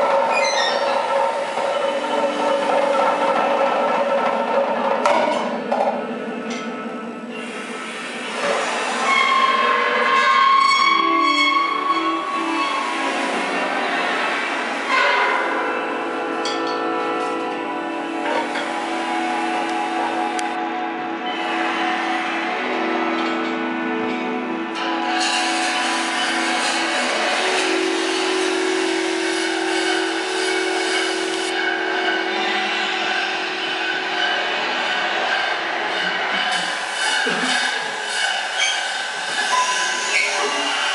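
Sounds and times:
grinding noisy electronic texture: 0:00.0 - 0:40.9
sustained dissonant high tones: 0:00.0 - 0:40.9.

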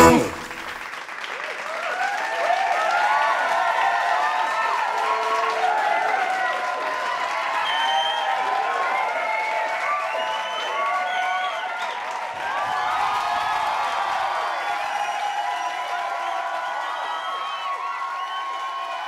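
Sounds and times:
audience clapping and cheering: 0:00.0 - 0:19.0.

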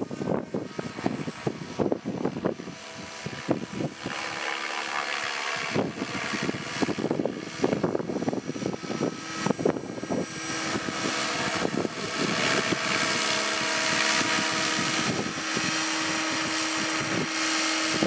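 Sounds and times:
motor hum: 0:00.0 - 0:18.0
rc helicopter rotor whirring: 0:00.0 - 0:18.0.

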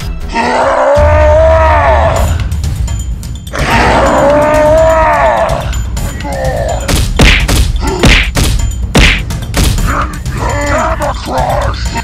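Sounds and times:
cartoon punch hits: 0:06.9 - 0:09.8.

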